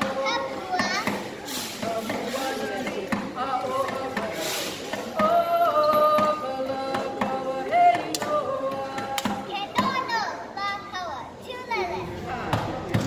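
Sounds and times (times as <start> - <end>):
children chattering: 0.0 - 5.8, 8.8 - 13.0.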